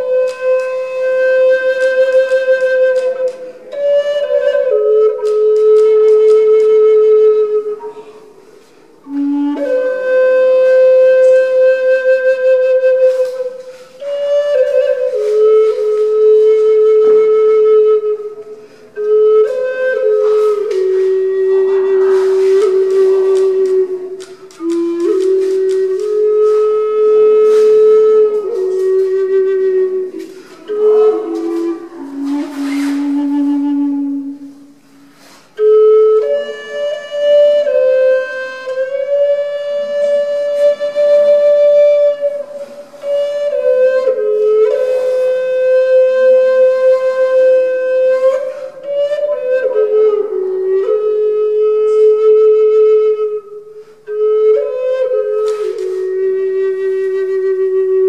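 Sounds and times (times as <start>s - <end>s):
solo flute melody: 0.0s - 58.0s.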